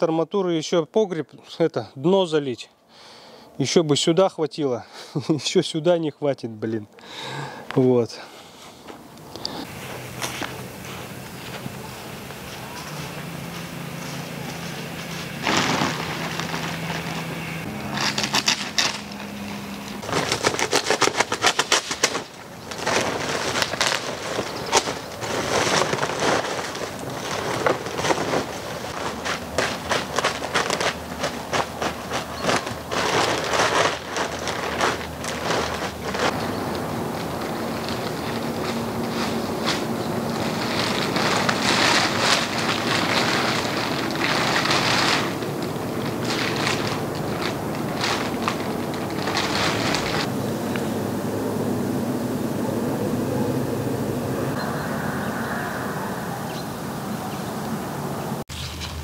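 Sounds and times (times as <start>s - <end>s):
plastic bag crinkling: 9.5s - 50.3s.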